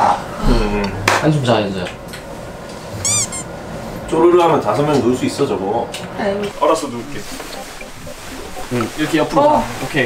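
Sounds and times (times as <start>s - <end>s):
high-pitched squeaks: 2.9s - 3.6s.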